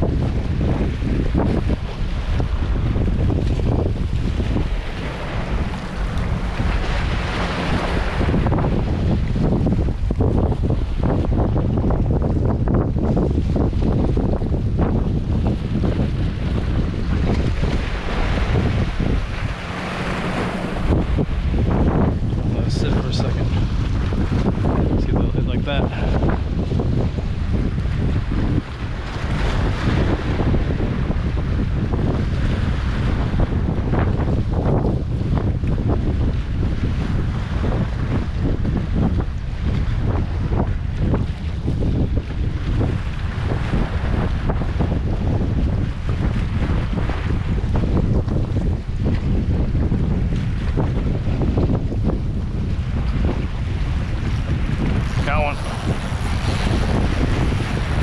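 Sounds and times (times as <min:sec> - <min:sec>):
wind buffeting microphone: 0:00.0 - 0:58.0
water washing against rocks: 0:53.3 - 0:58.0.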